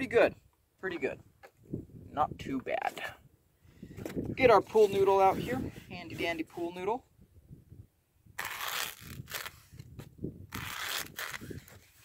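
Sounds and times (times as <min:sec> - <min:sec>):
knife cutting foam: 0:08.4 - 0:09.9, 0:10.5 - 0:12.0.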